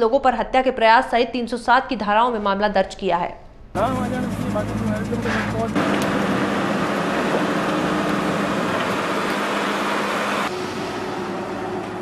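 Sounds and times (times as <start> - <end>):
truck engine running: 3.8 - 12.0.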